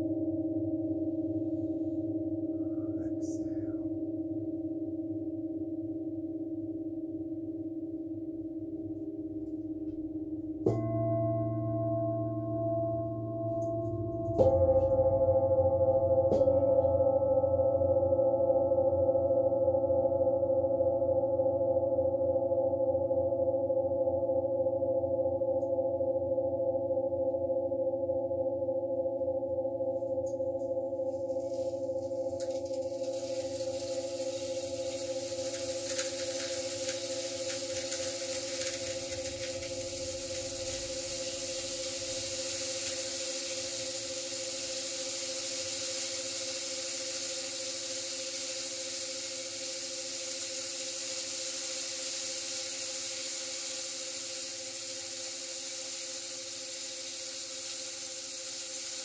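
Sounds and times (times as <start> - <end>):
metal singing bowls ringing: 8.6 - 26.0, 29.6 - 56.7
steady high hiss: 30.3 - 59.0.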